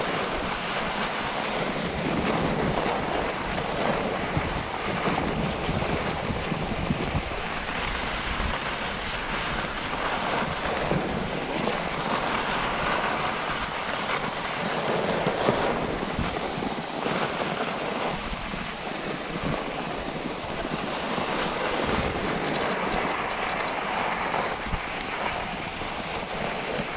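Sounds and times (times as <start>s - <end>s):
skis gliding over snow: 0.0s - 26.9s
wind rushing over microphone: 0.0s - 26.9s.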